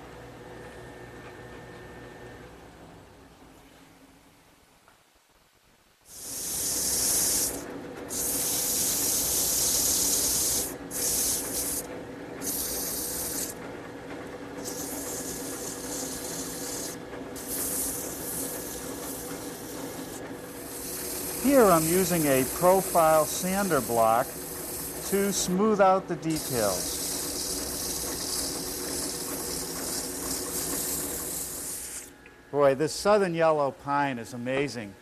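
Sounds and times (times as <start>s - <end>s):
hissing cutting on spinning wood: 6.1s - 13.6s, 14.6s - 32.1s
lathe motor hum: 6.2s - 32.2s.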